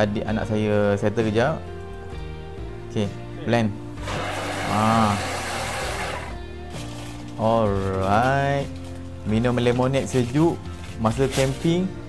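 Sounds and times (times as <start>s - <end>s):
background music: 0.0s - 12.0s
food processor whirring: 4.0s - 6.4s.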